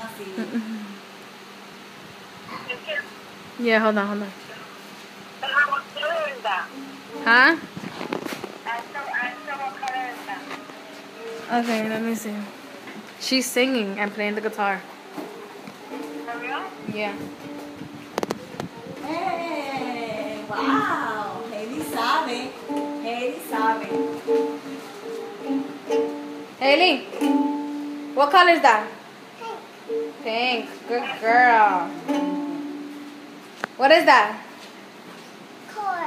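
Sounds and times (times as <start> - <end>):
ukulele strums: 22.6 - 23.0, 23.7 - 26.5, 27.1 - 28.1, 31.9 - 33.2
toddler singing babble: 29.4 - 29.7.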